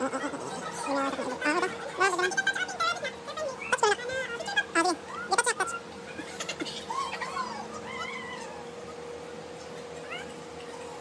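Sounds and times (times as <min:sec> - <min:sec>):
animal calls: 0:00.0 - 0:02.3, 0:03.4 - 0:11.0
faint steady hum: 0:00.0 - 0:11.0.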